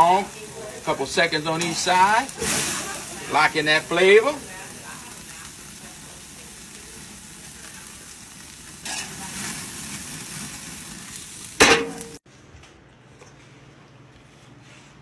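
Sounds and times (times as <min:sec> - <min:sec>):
steaks sizzling on grill: 0:00.0 - 0:12.2.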